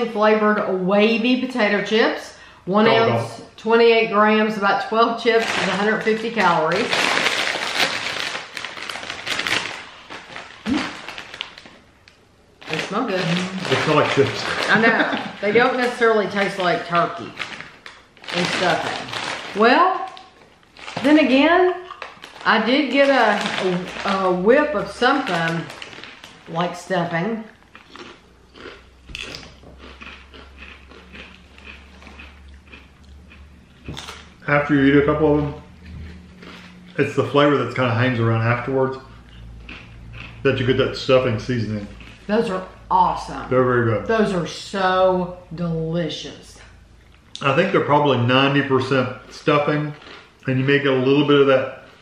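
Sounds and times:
chip bag crinkling: 5.2s - 11.9s, 12.6s - 26.9s.

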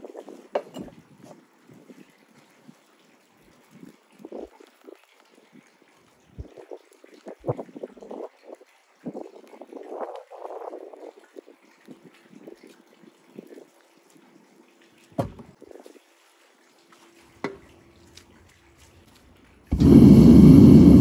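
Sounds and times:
furnace flame roaring: 19.7s - 21.0s.

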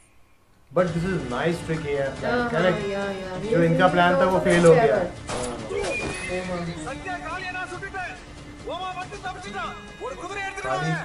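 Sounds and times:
horse whinnying: 5.7s - 6.9s.

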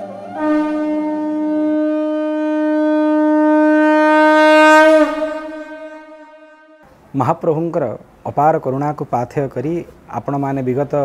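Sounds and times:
conch shell blown: 0.0s - 6.8s.

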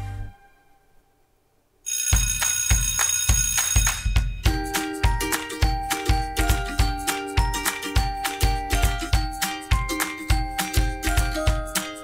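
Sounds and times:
steady drum beat: 2.2s - 12.0s.

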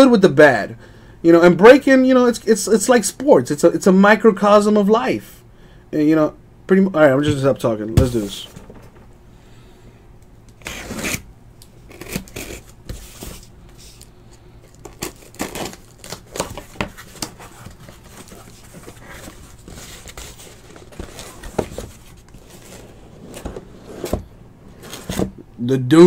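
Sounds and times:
cardboard boxes scraping and tearing: 11.9s - 14.0s, 14.8s - 25.4s.

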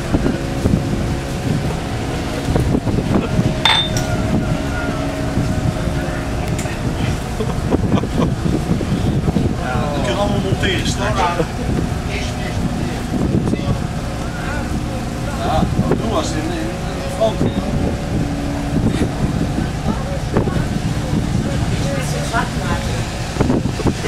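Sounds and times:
boat engine rumble: 0.0s - 24.0s
people talking: 4.9s - 18.0s, 18.9s - 24.0s.

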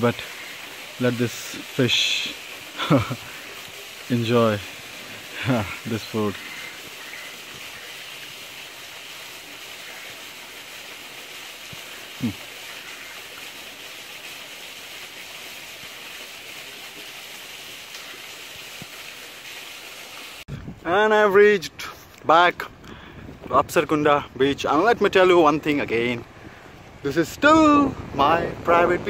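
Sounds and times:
stream rushing: 0.0s - 29.0s.

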